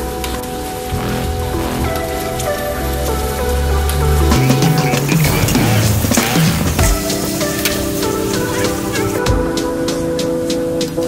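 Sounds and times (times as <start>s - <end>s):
background music: 0.9s - 11.0s.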